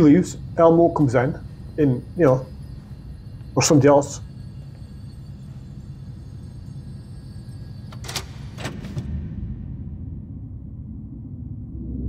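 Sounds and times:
low steady soundtrack rumble: 0.0s - 12.0s.

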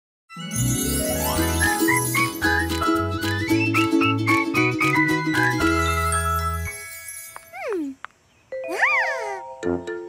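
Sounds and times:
cartoon title tune: 0.3s - 6.8s, 8.6s - 10.0s.

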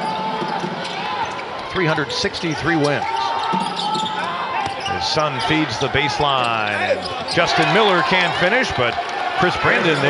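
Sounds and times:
commentator talking: 4.8s - 10.0s.

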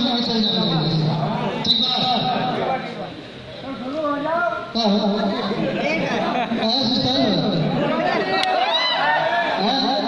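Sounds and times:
man talking over pa system: 0.0s - 8.4s.

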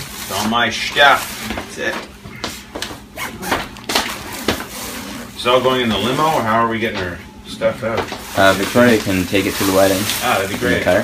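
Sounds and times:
fabric bag rustling: 8.2s - 11.0s.

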